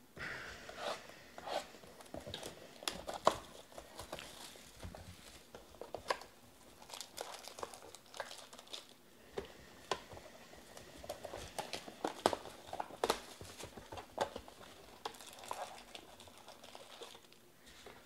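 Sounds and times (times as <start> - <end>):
plastic wrap crinkling and tearing: 1.9 - 9.0, 10.7 - 18.0.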